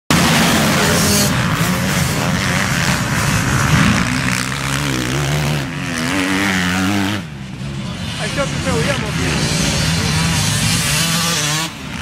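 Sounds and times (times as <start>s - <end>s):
motocross bikes revving: 0.1s - 12.0s.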